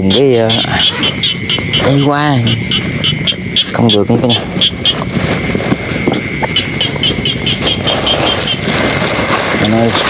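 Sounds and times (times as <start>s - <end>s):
constant rushing noise: 0.0s - 10.0s
night insects chirping: 0.0s - 10.0s
thin high drone: 0.0s - 10.0s.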